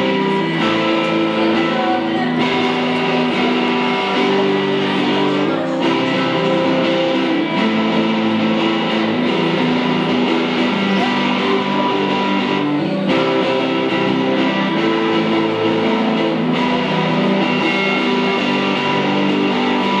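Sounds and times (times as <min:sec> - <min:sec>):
electric guitar chords: 0:00.0 - 0:20.0.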